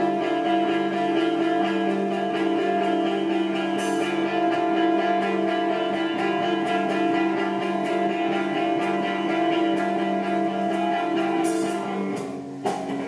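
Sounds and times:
electric guitars droning chord: 0.0 - 13.0.

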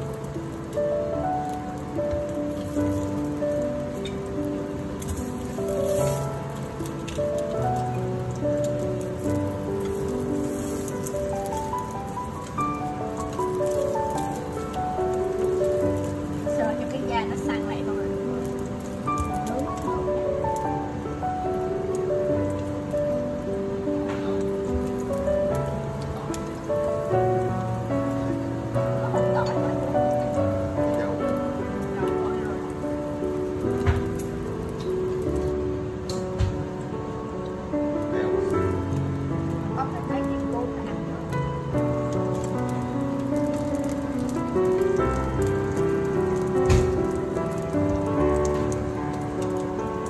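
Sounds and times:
background music with held notes: 0.0 - 50.0
oil crackling spatter: 0.0 - 50.0
sausages sizzling in oil: 0.0 - 50.0.

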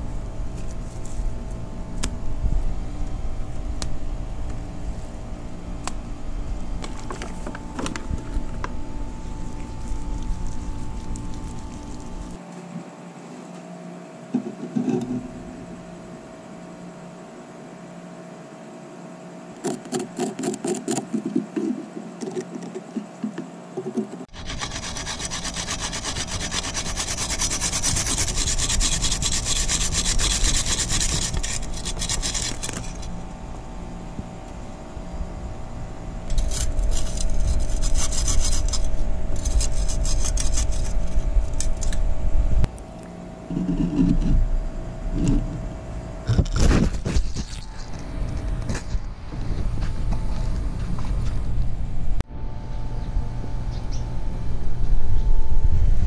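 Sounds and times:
metal blade scraping dried clay: 24.4 - 33.2, 36.3 - 42.0.

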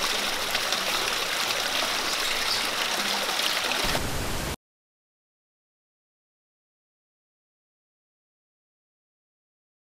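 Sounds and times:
fountain water running into pool: 0.0 - 4.0.

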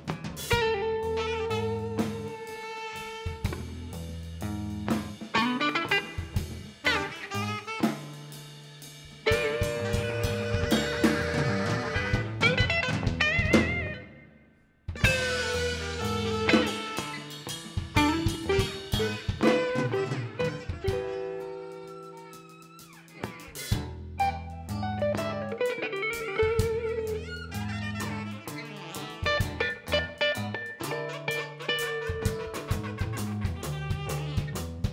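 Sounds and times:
electric guitar: 0.0 - 8.2, 9.2 - 34.9
drum kit: 0.0 - 14.2, 14.9 - 34.9
bass guitar: 0.0 - 34.9
keyboard: 9.2 - 14.2.

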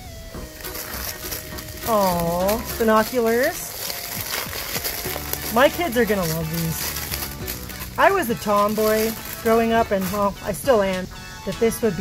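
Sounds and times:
plastic wrap crinkling: 0.0 - 10.8
soft background music: 0.0 - 12.0
woman speaking: 1.8 - 3.8, 5.4 - 7.0, 8.0 - 12.0.

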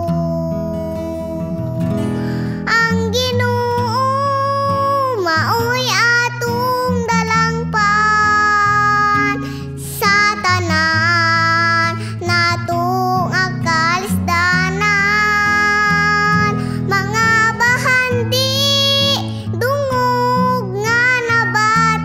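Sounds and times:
girl singing worship song: 0.0 - 22.0.

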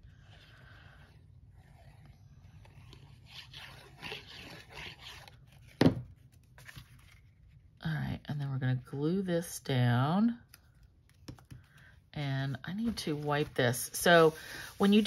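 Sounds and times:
soft paper rustles: 5.5 - 7.8, 10.5 - 15.0.

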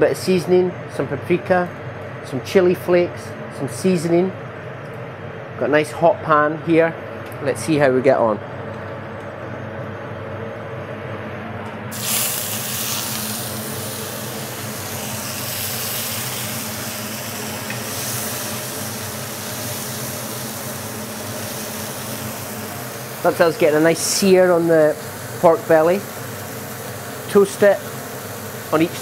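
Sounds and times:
meat sizzling in frying pan: 11.9 - 29.0.

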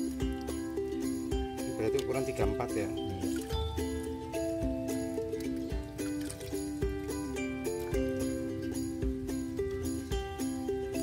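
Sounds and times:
melodic background music: 0.0 - 11.0
soft steady beat: 0.0 - 11.0.

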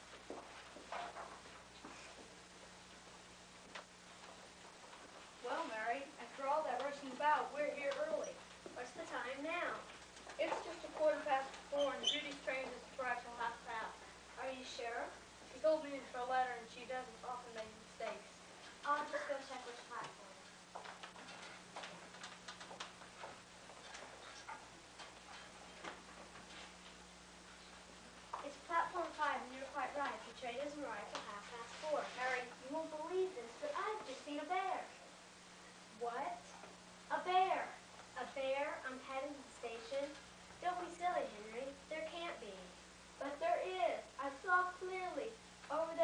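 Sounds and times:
low background hiss: 0.0 - 46.0
steady low hum: 0.0 - 46.0.

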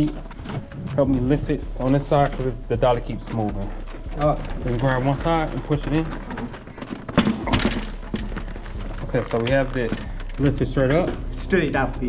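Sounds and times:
scraping and rustling: 0.0 - 11.6
furniture handling noise: 0.0 - 11.8.

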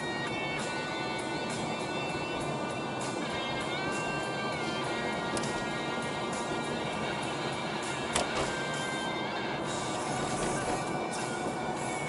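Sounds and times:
car radio music: 0.0 - 12.0.

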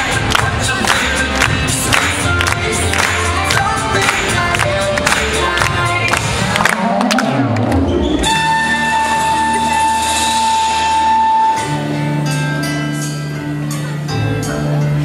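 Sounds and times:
hip-hop dance music: 0.0 - 12.4.

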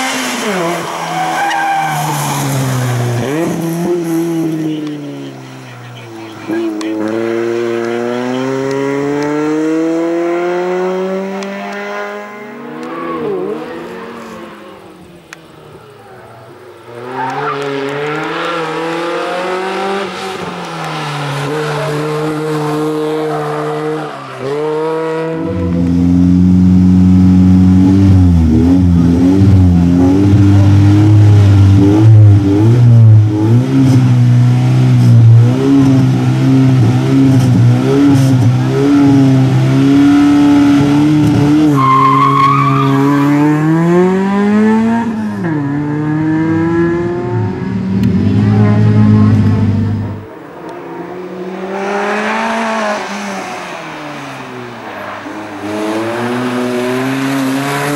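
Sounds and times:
race car engine revving: 0.0 - 57.9.

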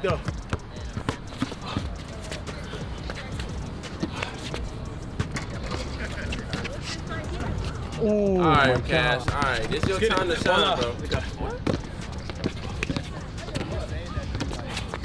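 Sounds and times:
basketball bouncing: 0.0 - 7.8, 8.6 - 15.0
outdoor background noise: 0.0 - 15.0.

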